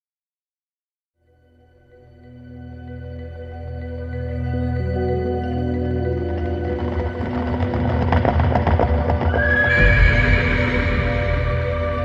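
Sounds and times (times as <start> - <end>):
ambient music drone: 1.3 - 12.0
horse hooves clip-clopping: 6.3 - 11.8
horse whinnying: 9.2 - 12.0.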